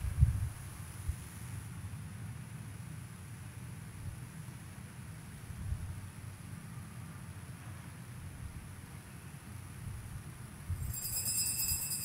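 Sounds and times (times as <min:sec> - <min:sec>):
small bells jingling: 0:10.8 - 0:12.0.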